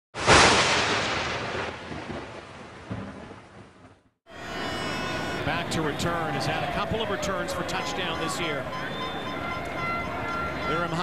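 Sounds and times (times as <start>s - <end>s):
loud crash sound effect: 0.2s - 1.8s.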